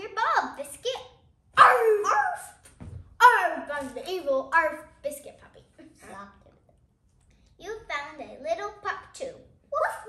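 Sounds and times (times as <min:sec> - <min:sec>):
faint low thud: 0:02.8 - 0:03.2.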